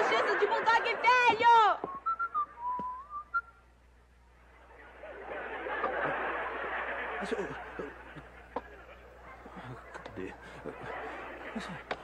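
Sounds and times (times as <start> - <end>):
man whistling a tune: 1.9 - 3.6.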